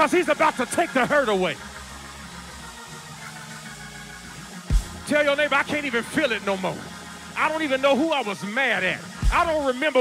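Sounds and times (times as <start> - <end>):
low bass drone: 1.6 - 7.8.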